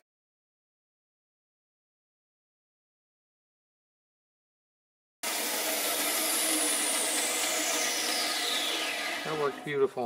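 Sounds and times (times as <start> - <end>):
bandsaw running with whine: 5.2 - 10.0.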